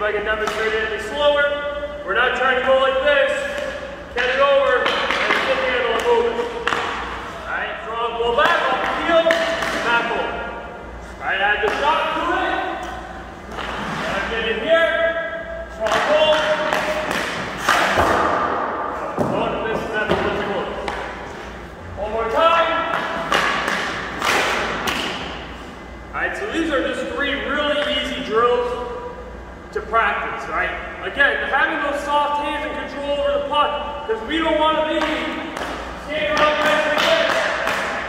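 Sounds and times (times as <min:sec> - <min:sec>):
man talking: 0:00.0 - 0:10.5, 0:11.2 - 0:13.0, 0:13.8 - 0:17.2, 0:19.0 - 0:21.0, 0:21.9 - 0:23.1, 0:26.1 - 0:29.0, 0:29.7 - 0:37.8
hockey stick knocking puck: 0:00.4 - 0:01.0, 0:03.4 - 0:07.2, 0:08.3 - 0:10.4, 0:11.6 - 0:14.1, 0:15.8 - 0:18.6, 0:19.2 - 0:21.2, 0:22.3 - 0:25.4, 0:34.8 - 0:38.0.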